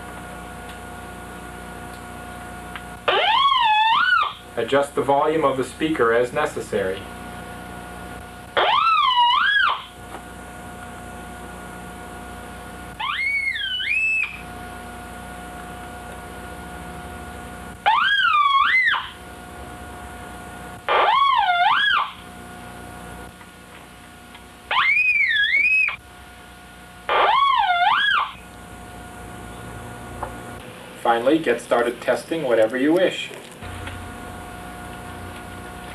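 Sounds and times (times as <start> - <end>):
low steady hum: 0.0 - 35.9.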